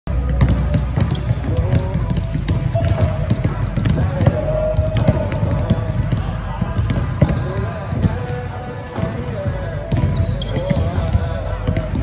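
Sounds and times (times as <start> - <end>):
basketballs bouncing on hardwood: 0.1 - 12.0
voices in background: 0.8 - 12.0.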